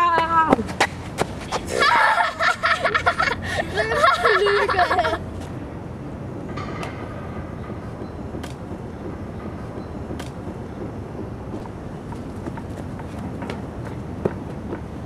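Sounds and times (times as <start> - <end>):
outdoor background rumble: 0.0 - 15.0.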